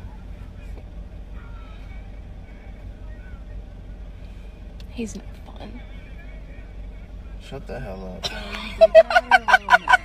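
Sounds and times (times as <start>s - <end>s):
car engine rumble: 0.0s - 10.0s.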